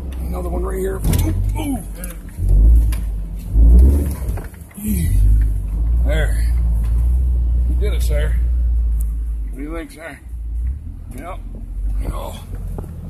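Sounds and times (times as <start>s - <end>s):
off-road vehicle engine rumbling: 0.0s - 13.0s.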